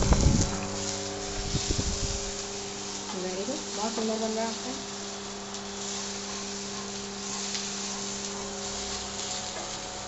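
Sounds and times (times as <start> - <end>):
onions sizzling in a pan: 0.0 - 10.0.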